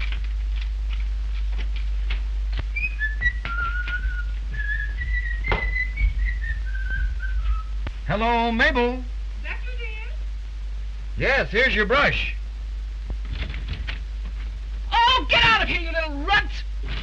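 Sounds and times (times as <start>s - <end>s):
footsteps tapping: 0.0s - 8.0s
man whistling a tune: 2.8s - 7.7s.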